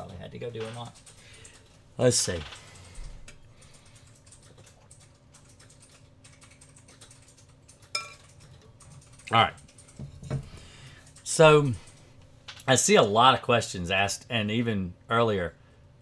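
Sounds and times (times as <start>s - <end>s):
typing on computer keyboard: 0.0s - 10.0s.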